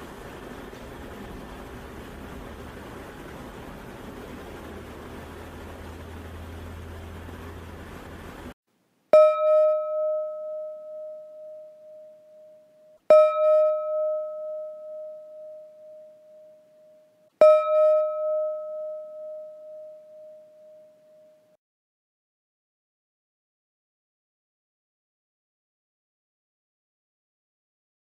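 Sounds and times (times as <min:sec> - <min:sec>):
meditation gong ringing: 0:09.2 - 0:21.6.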